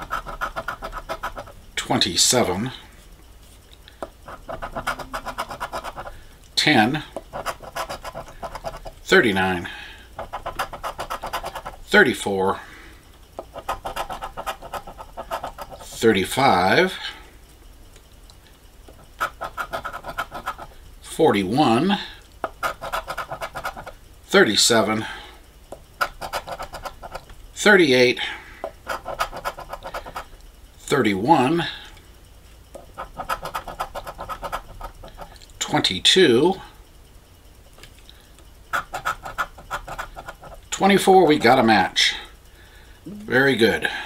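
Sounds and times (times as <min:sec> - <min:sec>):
coin scratching lottery ticket: 0:00.0 - 0:01.6, 0:04.2 - 0:09.3, 0:10.2 - 0:11.9, 0:13.5 - 0:16.2, 0:19.0 - 0:20.7, 0:22.4 - 0:24.0, 0:26.0 - 0:27.2, 0:28.7 - 0:30.3, 0:32.8 - 0:35.8, 0:38.7 - 0:41.7.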